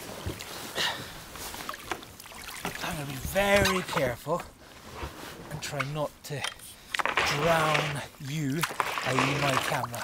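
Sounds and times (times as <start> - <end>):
water splashing around kayak hull: 0.0 - 4.2, 6.8 - 10.0
handling knocks and rustles: 4.8 - 10.0.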